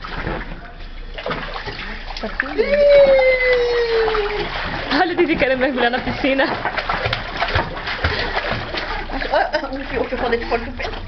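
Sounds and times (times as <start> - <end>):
water splashing in paddling pool: 0.0 - 11.0.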